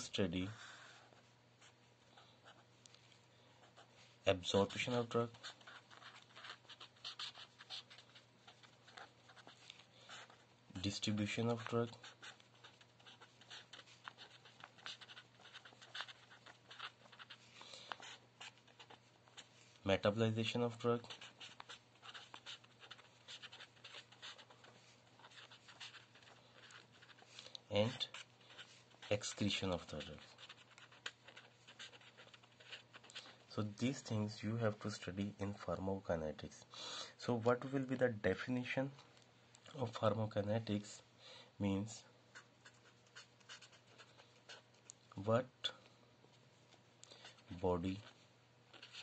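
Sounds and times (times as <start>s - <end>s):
marker pen scratching on paper: 0.0s - 2.8s, 3.6s - 35.2s, 42.3s - 45.2s, 47.1s - 49.0s.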